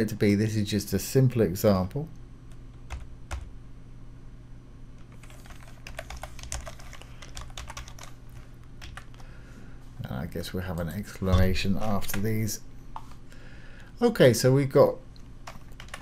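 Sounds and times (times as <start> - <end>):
low steady hum: 0.0 - 16.0
typing on computer keyboard: 5.2 - 8.2, 15.5 - 16.0.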